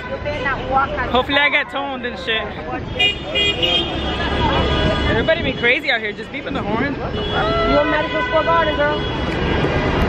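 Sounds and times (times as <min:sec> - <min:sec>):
car horns honking: 0:00.0 - 0:10.0
rumble of passing vehicles: 0:00.0 - 0:10.0.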